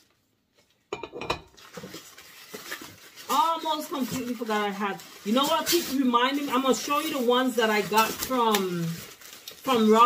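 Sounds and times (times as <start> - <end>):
packing paper rustling: 1.5 - 10.0.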